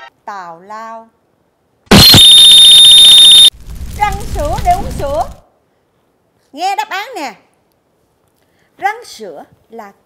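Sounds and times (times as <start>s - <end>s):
high-pitched electronic alarm tone: 1.9s - 3.5s.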